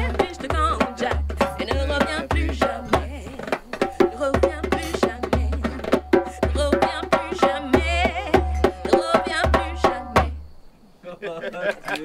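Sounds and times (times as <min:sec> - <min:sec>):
person singing: 0:00.0 - 0:10.3.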